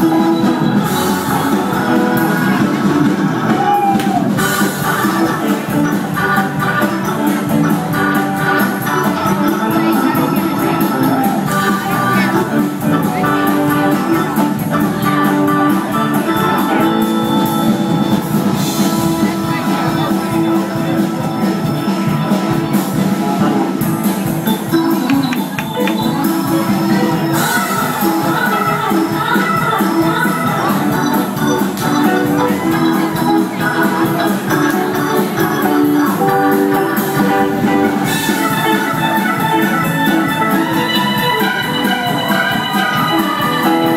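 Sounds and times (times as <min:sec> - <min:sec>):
drum kit beat: 0:00.0 - 0:43.9
electric guitar: 0:00.0 - 0:43.9
live rock band playing: 0:00.0 - 0:43.9
organ chords: 0:00.0 - 0:43.9.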